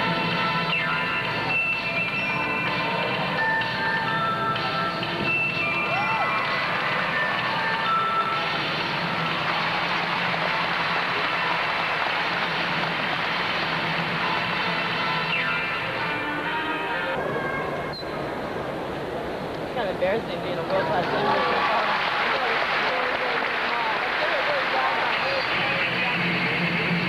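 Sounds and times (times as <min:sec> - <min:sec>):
arena music: 0:00.0 - 0:27.0
crowd noise: 0:00.0 - 0:27.0.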